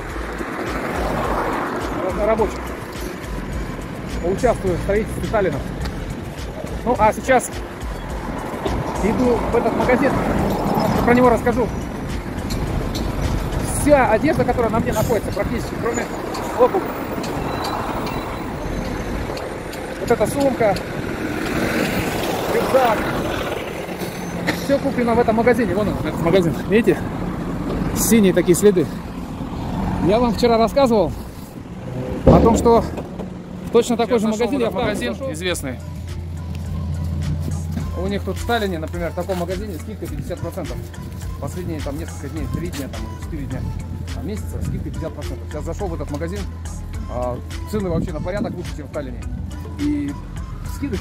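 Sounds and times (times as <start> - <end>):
music: 0.0 - 21.0, 23.6 - 29.0, 32.3 - 51.0
street traffic rumble: 0.0 - 51.0.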